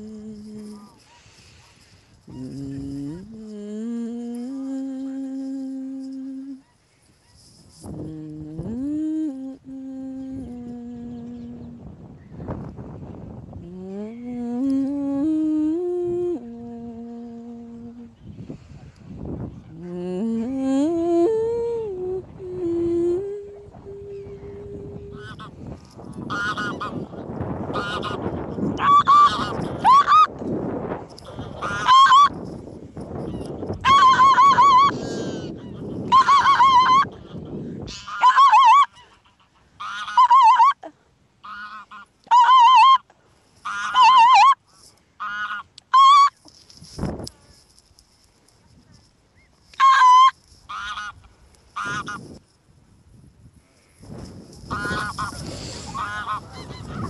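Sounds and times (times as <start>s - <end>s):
geese honking: 24.5s - 25.6s, 26.2s - 30.3s, 31.2s - 32.3s, 33.3s - 40.8s, 41.4s - 43.0s, 43.6s - 44.6s, 45.2s - 46.4s, 49.8s - 52.3s, 54.7s - 57.0s.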